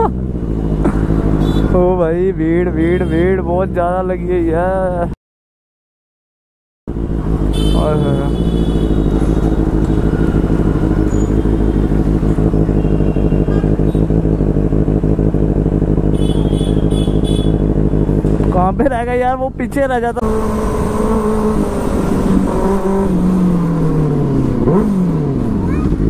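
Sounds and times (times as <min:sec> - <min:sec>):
motorcycle engine rumbling: 0:00.0 - 0:05.2, 0:06.9 - 0:26.0.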